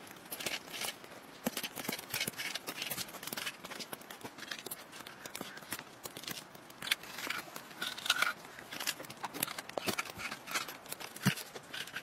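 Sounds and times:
scraping radish flesh: 0.2s - 12.0s.

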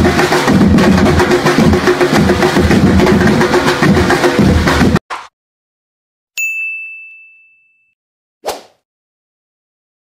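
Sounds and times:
bright bell ding: 6.4s - 8.0s.

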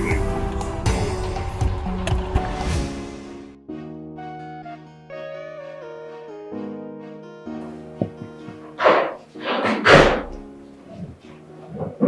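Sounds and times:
soft film score with held notes: 0.0s - 12.0s
short thuds: 8.0s - 10.4s.

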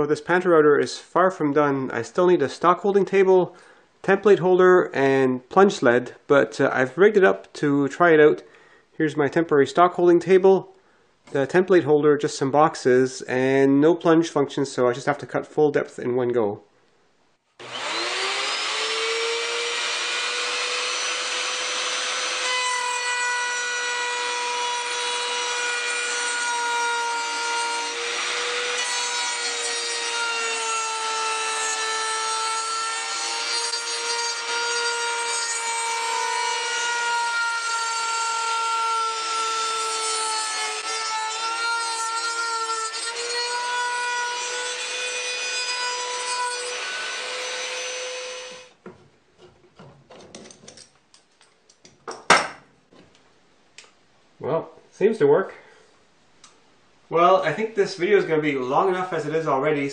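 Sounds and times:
wood router whining: 17.6s - 48.7s.

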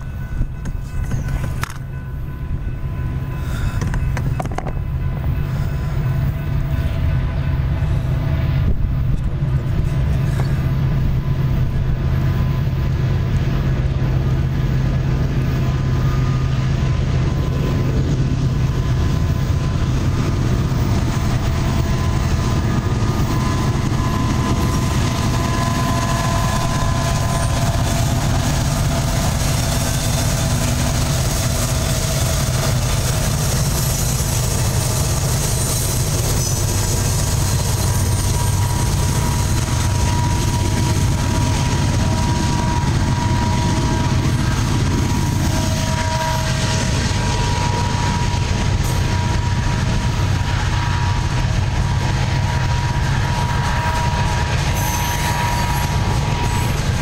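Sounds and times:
diesel locomotives passing: 0.0s - 57.0s
wheel-and-rail rumble: 0.0s - 57.0s
thin steady whine: 12.3s - 57.0s.

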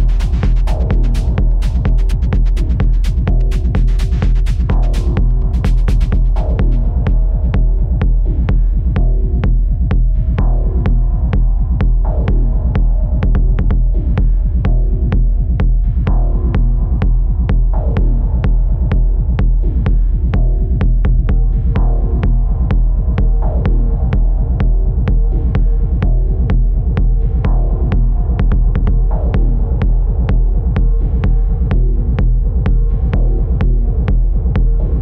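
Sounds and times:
deep bass drone: 0.0s - 35.0s
kick drum: 0.0s - 35.0s.

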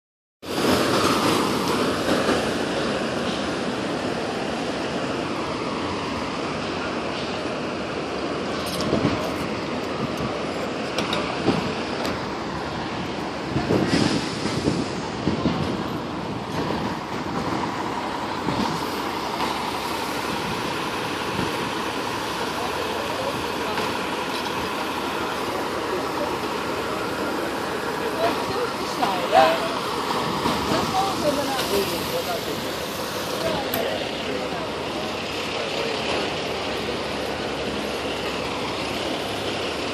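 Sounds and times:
street traffic: 0.4s - 39.9s
fire engine motors running: 2.4s - 39.9s.

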